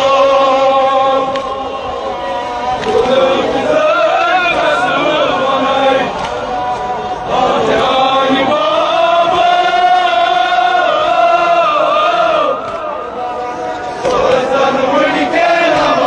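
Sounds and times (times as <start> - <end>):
men chanting in unison: 0.0 - 16.0.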